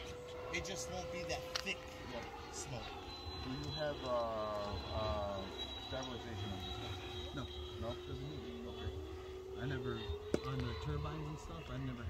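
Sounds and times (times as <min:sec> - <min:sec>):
men talking: 0:00.0 - 0:12.0
model jet whine: 0:00.0 - 0:12.0.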